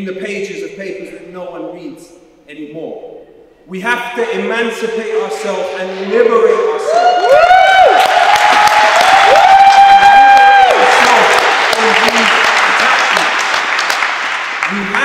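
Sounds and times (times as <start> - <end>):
shouted cheers: 6.6 - 13.4
audience applauding: 6.9 - 15.0.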